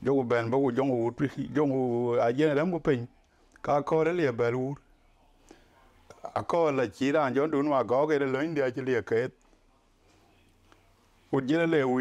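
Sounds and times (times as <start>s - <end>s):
man speaking: 0.0s - 4.8s, 6.1s - 9.4s, 10.8s - 12.0s.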